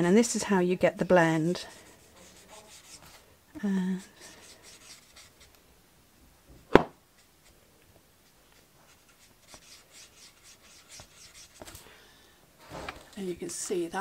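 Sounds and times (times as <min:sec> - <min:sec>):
marker scratching on card: 0:01.5 - 0:03.2, 0:04.0 - 0:05.6, 0:08.2 - 0:11.8.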